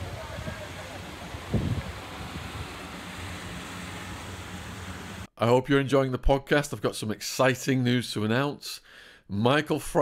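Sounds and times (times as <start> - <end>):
wind noise on microphone: 0.0 - 3.1
distant car engine hum: 0.0 - 5.3.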